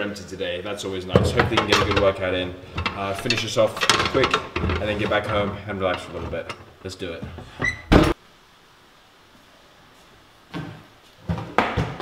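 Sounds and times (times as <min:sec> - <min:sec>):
wooden locker door knocks and clatters: 0:07.3 - 0:08.2.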